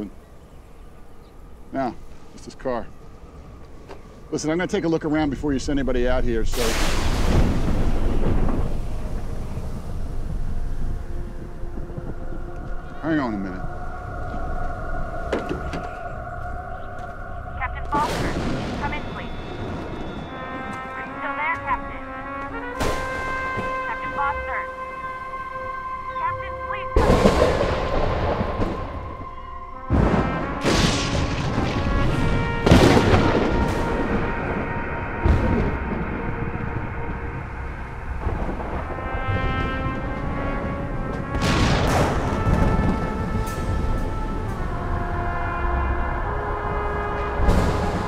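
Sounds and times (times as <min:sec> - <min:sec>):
sustained tones: 0:00.0 - 0:48.0
thunderclaps: 0:02.0 - 0:48.0
orchestral music: 0:04.3 - 0:48.0
loud noisy burst: 0:06.5 - 0:10.7.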